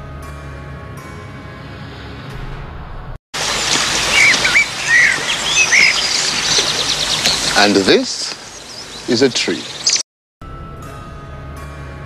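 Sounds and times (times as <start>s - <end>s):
steady outdoor hiss: 3.4s - 10.0s
birds chirping: 3.4s - 10.1s
soft sustained music: 10.4s - 12.0s.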